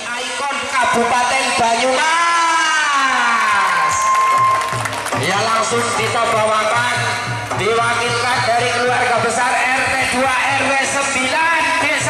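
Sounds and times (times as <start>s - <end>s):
person shouting a long cheer: 2.2s - 6.5s.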